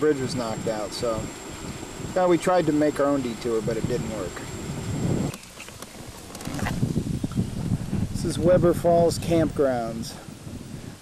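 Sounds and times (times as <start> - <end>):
wind on microphone: 0.0 - 11.0
car cabin rumble: 0.6 - 8.2
microphone handling knocks: 5.1 - 8.1.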